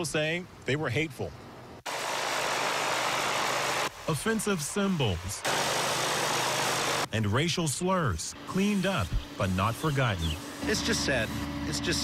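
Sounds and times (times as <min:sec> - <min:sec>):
pressure washer jet hissing: 0:01.9 - 0:07.1, 0:08.4 - 0:11.5
engine humming: 0:08.4 - 0:12.0.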